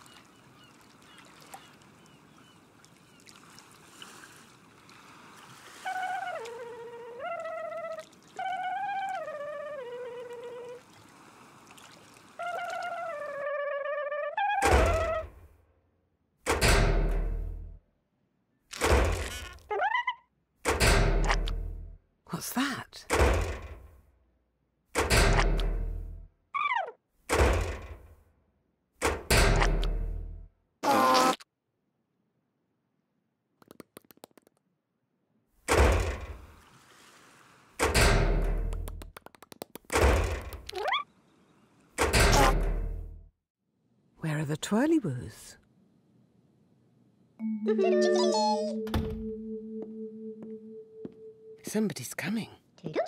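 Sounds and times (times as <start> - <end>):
heavy cartoon thuds: 27.3 - 28.1
melodic phrase of held notes: 47.4 - 51.6.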